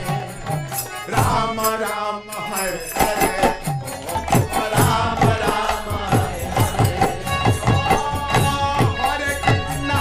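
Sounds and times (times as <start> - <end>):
hand cymbals jingling: 0.0 - 10.0
harmonium drone: 0.0 - 10.0
group chanting: 1.1 - 10.0.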